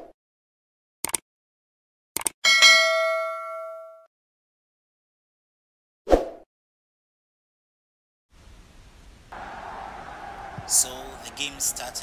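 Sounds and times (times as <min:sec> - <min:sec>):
sound effect clicks: 0:01.0 - 0:01.2, 0:02.2 - 0:02.4
notification bell ding: 0:02.4 - 0:04.1.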